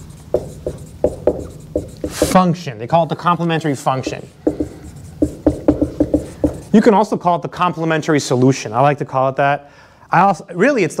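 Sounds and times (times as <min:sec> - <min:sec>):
marker squeaking on whiteboard: 0:00.0 - 0:02.5, 0:03.3 - 0:06.9.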